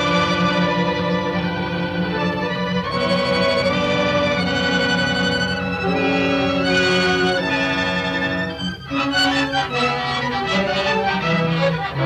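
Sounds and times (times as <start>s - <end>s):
orchestral strings sustained chords: 0.0s - 12.0s.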